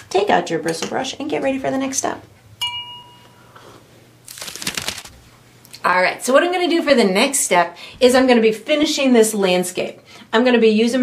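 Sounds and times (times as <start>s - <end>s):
paper towel crinkling: 4.3s - 5.2s.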